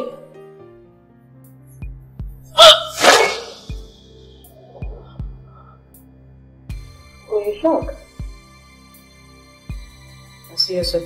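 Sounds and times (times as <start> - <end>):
tense film score: 2.2 - 10.6.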